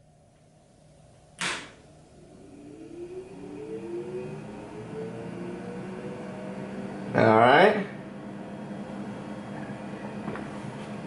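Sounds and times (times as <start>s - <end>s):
fan motor whining: 0.0s - 11.0s
steady machine hum: 0.0s - 11.0s
power switch clicking: 1.4s - 1.8s.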